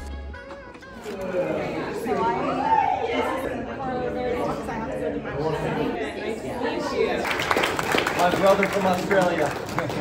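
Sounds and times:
music: 0:00.0 - 0:02.5
voices chattering in hall: 0:00.0 - 0:10.0.

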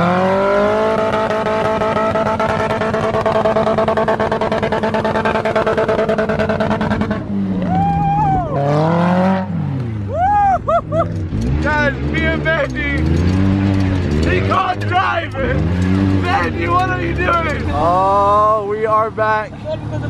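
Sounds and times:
buggy engine revving: 0:00.0 - 0:20.0
people whooping and laughing: 0:07.6 - 0:08.8, 0:10.1 - 0:11.2.

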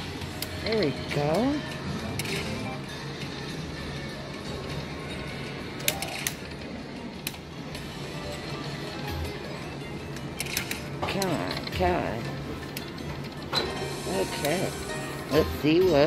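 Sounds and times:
slot machine music and reel spins: 0:00.0 - 0:16.0
casino floor din: 0:00.4 - 0:02.9.

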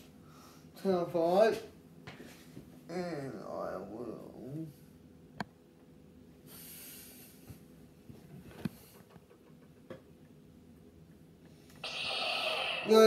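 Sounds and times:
lightsaber ignition sound effect: 0:11.8 - 0:13.0.

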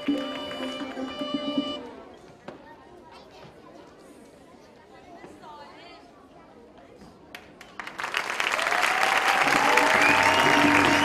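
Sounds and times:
chatter of many voices: 0:00.8 - 0:07.8.

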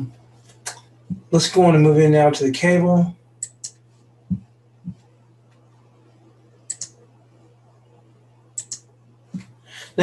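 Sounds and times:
faint low hum: 0:00.0 - 0:10.0
computer mouse double-clicks: 0:06.7 - 0:07.0, 0:08.6 - 0:08.8.

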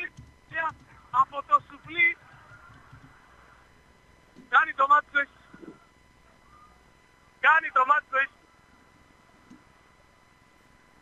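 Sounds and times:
faint steady background noise: 0:00.0 - 0:11.0.

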